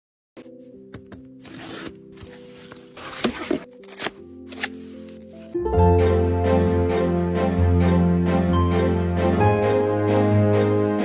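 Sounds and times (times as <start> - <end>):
soft background music: 0.4 - 11.0
cardboard box being opened: 1.0 - 5.1.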